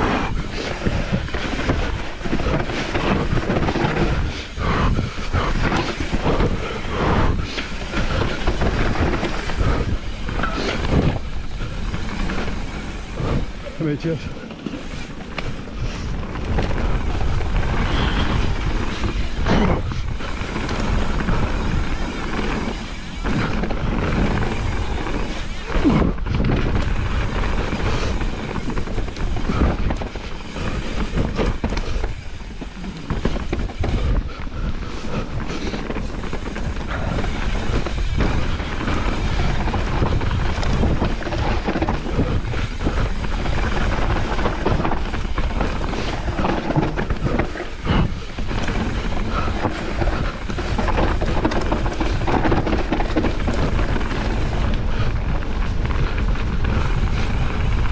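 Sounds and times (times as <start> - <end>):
bike rattling over roots: 0.0 - 57.9
bike tyres on dirt: 0.0 - 57.9
wind noise on microphone: 0.0 - 57.9.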